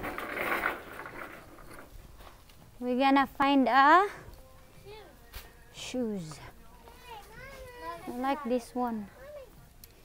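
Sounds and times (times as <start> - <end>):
shopping cart rattling on tiles: 0.0 - 2.0.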